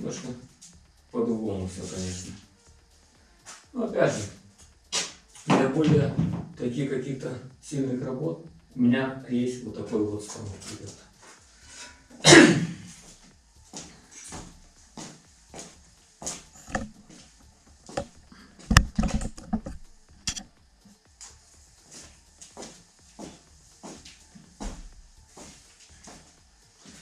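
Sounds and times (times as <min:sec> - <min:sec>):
camera handling knocks and taps: 0:16.6 - 0:17.0, 0:18.7 - 0:20.4.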